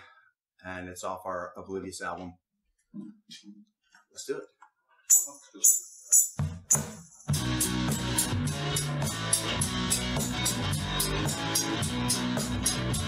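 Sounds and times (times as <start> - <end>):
hand shaker: 5.1 - 7.3
bass guitar: 7.3 - 13.0.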